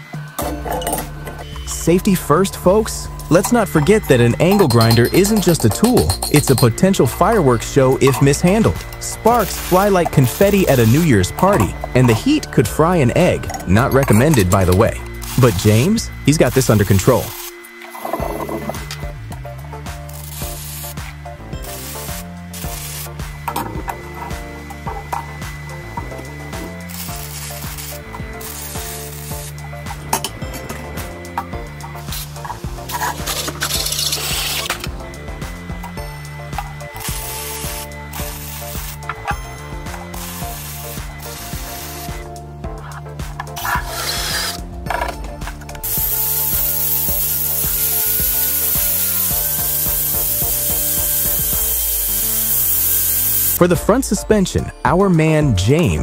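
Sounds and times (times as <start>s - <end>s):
music with bass beat: 0.0s - 17.4s, 18.2s - 56.0s
loud steady hiss: 1.4s - 23.6s, 25.6s - 42.4s, 45.8s - 53.8s
welding crackle: 3.2s - 12.4s, 13.2s - 19.0s, 19.6s - 24.0s, 26.0s - 35.0s, 36.6s - 39.3s, 45.8s - 53.6s.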